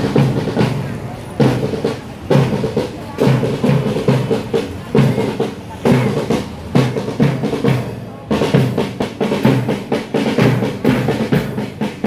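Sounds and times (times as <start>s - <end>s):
parade drumming: 0.0s - 12.0s.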